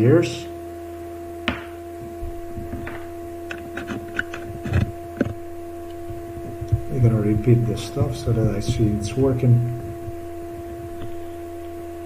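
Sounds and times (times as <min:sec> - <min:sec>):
steady electrical hum: 0:00.0 - 0:12.0
headphone cables handled: 0:02.0 - 0:11.8.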